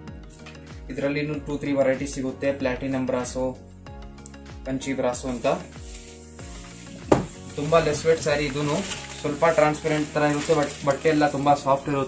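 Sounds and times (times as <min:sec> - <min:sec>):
fabric rustling: 0:05.3 - 0:11.8.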